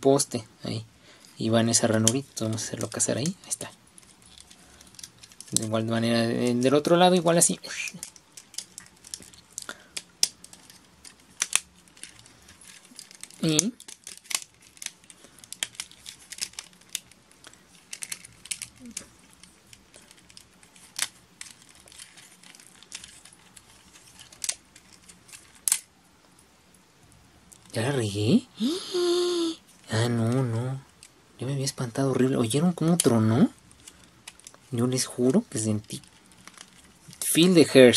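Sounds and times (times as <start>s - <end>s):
plastic toy joints clicking: 7.7s - 17.2s, 17.8s - 25.8s.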